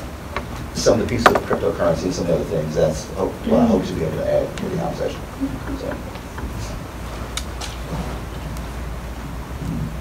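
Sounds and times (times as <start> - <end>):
low room rumble: 0.0 - 10.0
faint voices: 3.2 - 7.3.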